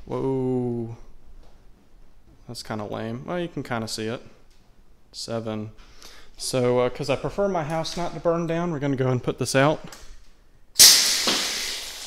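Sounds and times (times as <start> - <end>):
fire extinguisher spraying water: 10.8 - 12.0.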